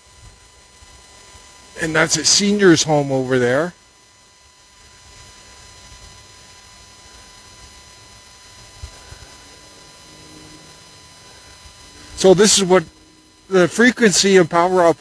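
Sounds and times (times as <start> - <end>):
electronic whine of high tones: 0.0 - 15.0.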